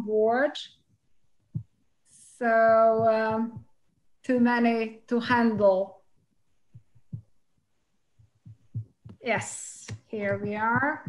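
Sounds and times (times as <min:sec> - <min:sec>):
faint low thumps: 0:01.3 - 0:01.8, 0:02.5 - 0:11.0.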